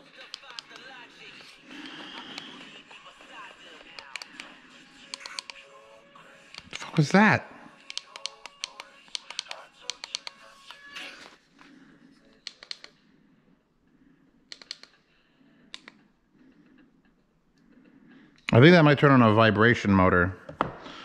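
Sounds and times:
faint music: 0.0s - 21.0s
plastic clicks of headphones handled: 3.9s - 4.5s, 5.1s - 5.6s, 7.8s - 11.4s, 12.4s - 13.0s, 14.5s - 15.0s.

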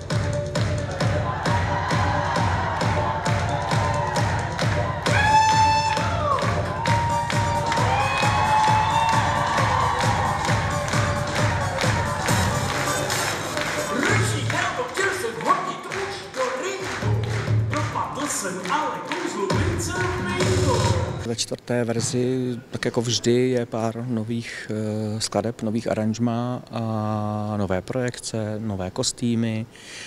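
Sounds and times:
steady beat: 0.0s - 21.2s.

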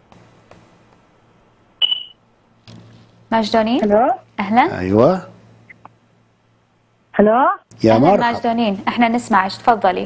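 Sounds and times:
short high-pitched beep: 1.8s - 2.2s.

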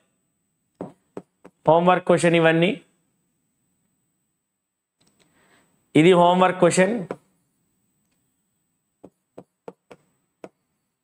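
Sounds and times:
stylus tapping on screen: 9.0s - 10.6s.

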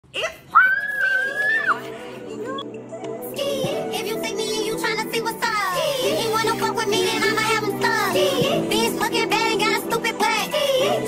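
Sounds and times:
young woman squealing: 0.2s - 1.8s
background music: 0.8s - 11.0s.

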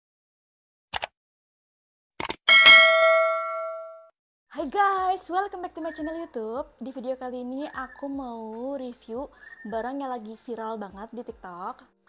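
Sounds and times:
quick clicks: 0.9s - 1.1s, 2.2s - 2.4s
notification bell ding: 2.5s - 4.1s.

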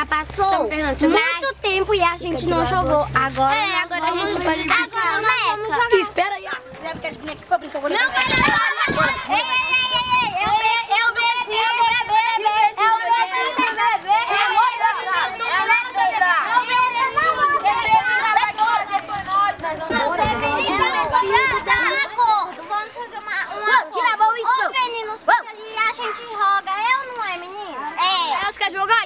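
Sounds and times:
children shouting and talking: 0.0s - 29.0s.

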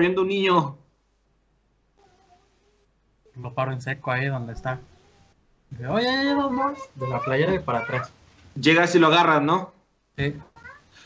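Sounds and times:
faint wavering cry: 6.3s - 8.2s, 10.4s - 11.0s.

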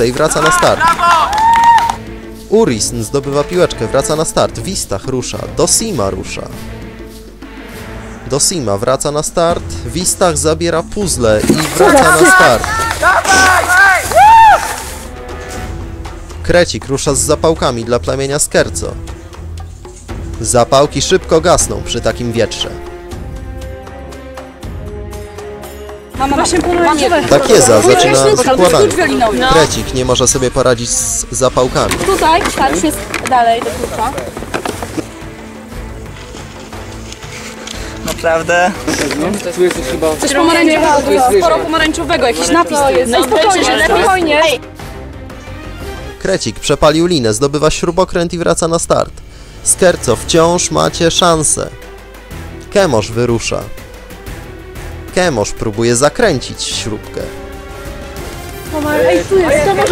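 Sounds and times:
people shouting: 0.2s - 2.0s, 11.8s - 15.0s, 58.7s - 59.9s
young people chattering: 26.2s - 29.6s, 40.0s - 44.6s, 58.7s - 59.9s.

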